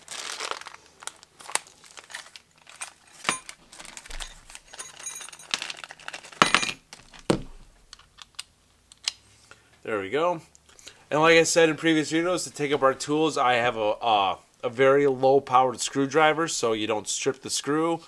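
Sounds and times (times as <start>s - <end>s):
plastic bag crinkling: 0.0s - 8.4s
tool handling clicks and knocks: 3.2s - 5.6s.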